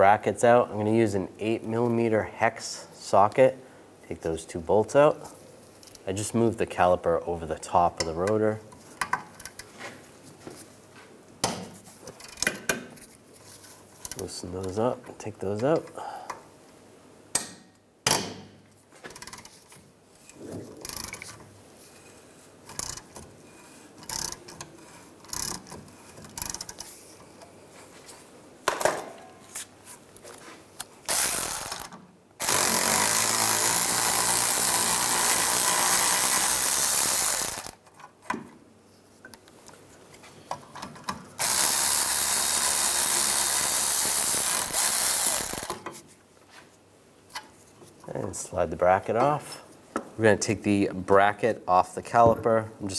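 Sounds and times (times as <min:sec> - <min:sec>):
cordless ratchet spinning: 0:20.8 - 0:21.3, 0:22.7 - 0:23.1, 0:24.0 - 0:24.4, 0:25.3 - 0:26.8, 0:31.1 - 0:37.8, 0:41.4 - 0:45.8.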